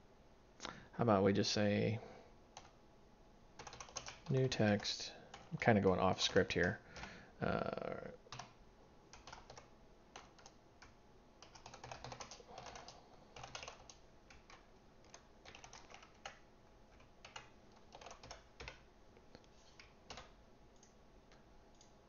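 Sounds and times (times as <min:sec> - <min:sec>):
typing on computer keyboard: 0:03.6 - 0:05.6, 0:08.3 - 0:18.9, 0:19.8 - 0:21.0.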